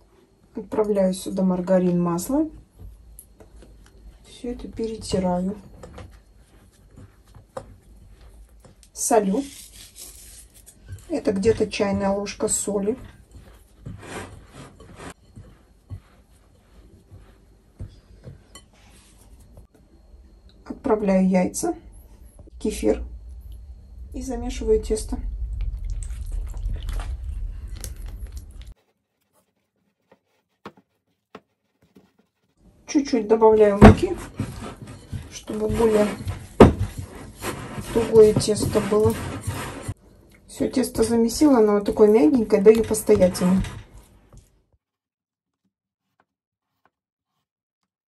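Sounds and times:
hands rubbing flour in bowl: 3.6 - 19.6, 24.4 - 40.0.

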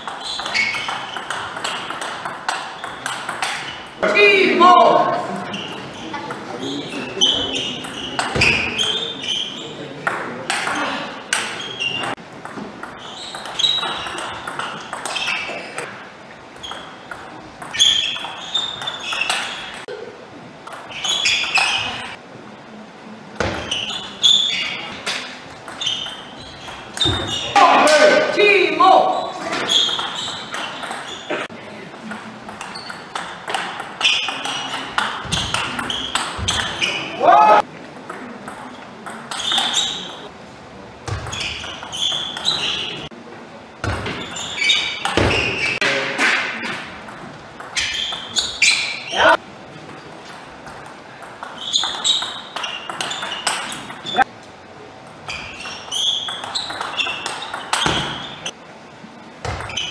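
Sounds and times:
voices and shouts: 27.4 - 29.6, 36.8 - 37.7.

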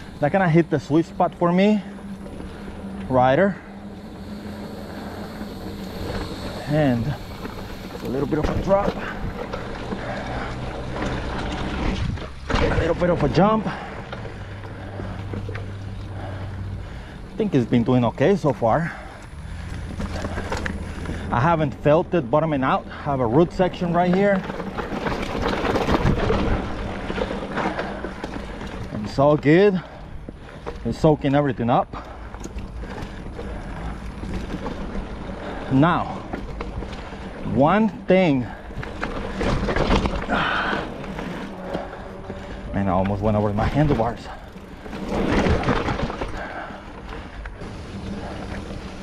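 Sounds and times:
bike tyres rolling on dirt: 0.0 - 49.0
steady low hum: 0.0 - 49.0
wind noise on microphone: 11.7 - 12.5.

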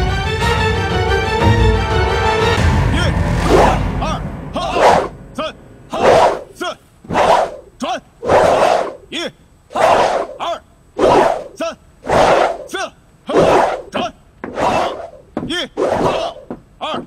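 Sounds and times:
group shouting in unison: 4.6 - 5.1, 5.9 - 6.5, 8.2 - 9.0, 14.5 - 15.2.

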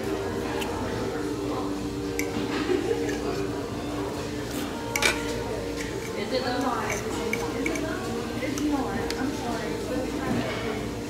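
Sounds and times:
cutlery clinking on plate: 2.1 - 3.5, 4.5 - 8.7
light utensil clicks: 4.8 - 9.3.

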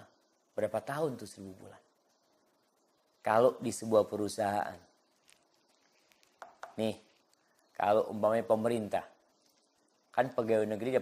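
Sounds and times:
faint clicks: 5.2 - 7.8.

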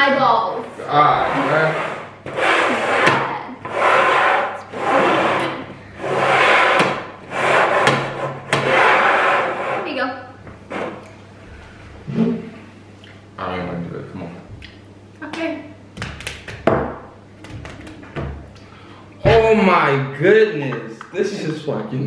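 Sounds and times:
bowls scraping on wooden table: 0.5 - 11.2, 12.0 - 12.7.

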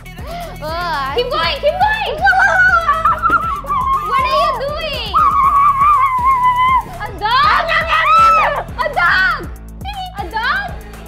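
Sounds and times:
background music with steady beat: 0.0 - 11.0
girl laughing loudly: 2.1 - 8.7.

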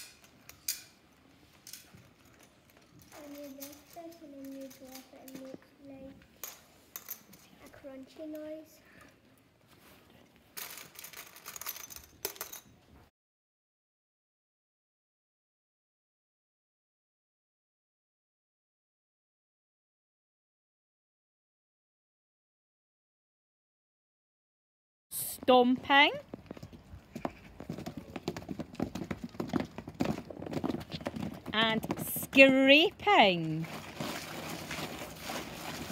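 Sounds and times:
coins clinking in plastic bowl: 3.0 - 5.4, 10.6 - 12.7
children stomping on wet tarmac: 33.6 - 35.9.

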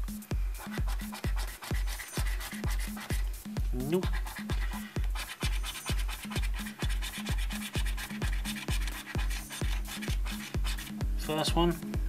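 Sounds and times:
electronic music with steady beat: 0.0 - 12.0.

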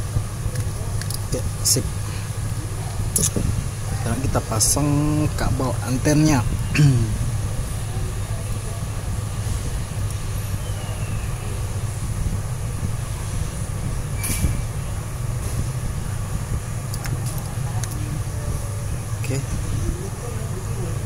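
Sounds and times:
steady low hum with hiss: 0.0 - 21.0.

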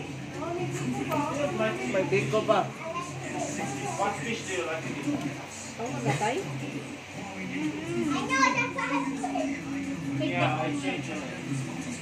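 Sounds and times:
child's voice: 7.9 - 9.6.

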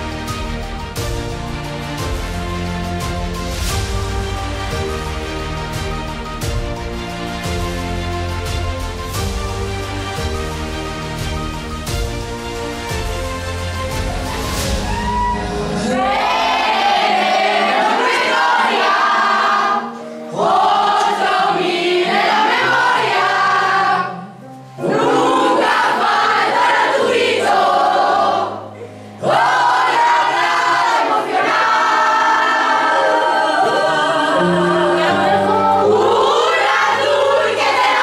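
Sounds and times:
women's choir singing: 15.6 - 38.0.

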